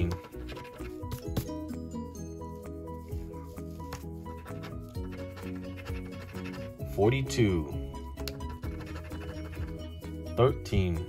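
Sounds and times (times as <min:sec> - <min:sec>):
background music: 0:00.0 - 0:11.0
coin scratching lottery ticket: 0:04.4 - 0:06.8, 0:08.6 - 0:09.9.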